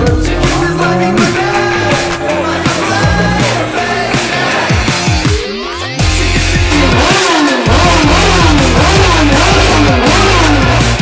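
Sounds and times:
loud rock music: 0:00.0 - 0:11.0
motorcycle engine revving: 0:00.0 - 0:11.0.

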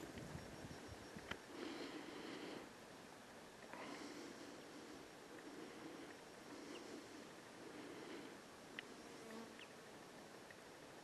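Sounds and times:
faint insect buzzing: 0:03.7 - 0:10.1.

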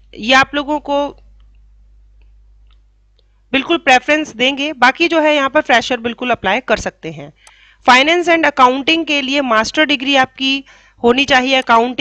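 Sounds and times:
woman speaking: 0:00.2 - 0:01.2, 0:03.6 - 0:12.0
soft clicks: 0:02.2 - 0:03.4.

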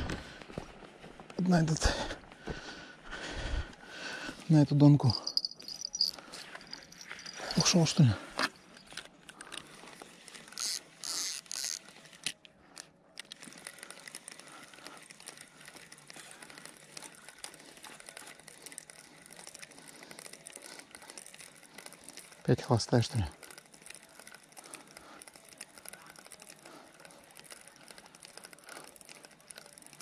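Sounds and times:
fishing reel clicking: 0:05.0 - 0:30.0.

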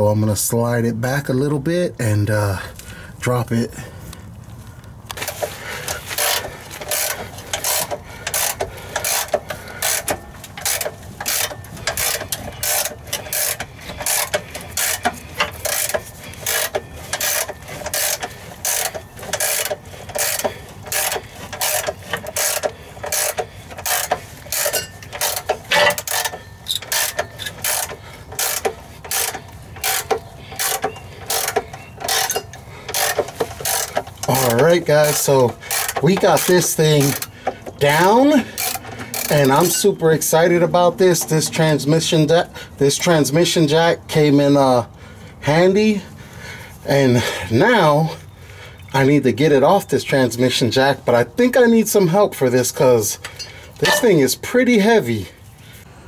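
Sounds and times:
ratchet wrench clicking: 0:05.1 - 0:39.9.

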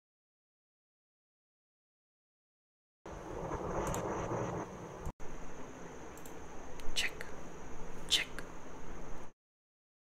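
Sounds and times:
thin high whine: 0:03.1 - 0:09.4.

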